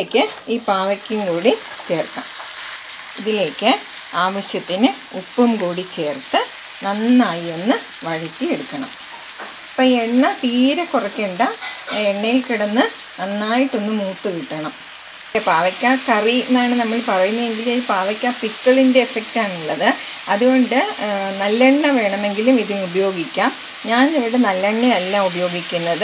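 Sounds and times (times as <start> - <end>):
woman speaking: 0.0 - 2.3, 3.2 - 9.0, 9.8 - 14.8, 15.4 - 26.0
oil sizzling in a pan: 0.0 - 26.0
spatula stirring in a pan: 1.5 - 3.2, 8.9 - 9.8, 11.5 - 12.2.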